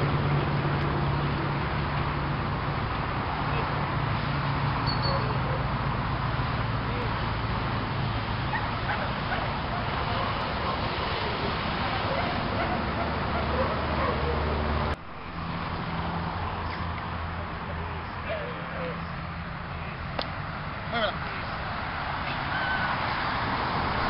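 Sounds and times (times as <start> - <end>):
dog barking: 5.0 - 5.7, 8.5 - 11.0, 12.0 - 14.4
voices: 8.4 - 14.6, 16.6 - 23.4.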